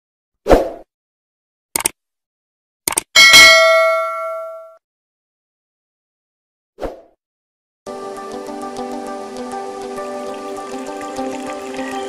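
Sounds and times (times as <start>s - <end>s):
bright bell ding: 3.2s - 4.8s.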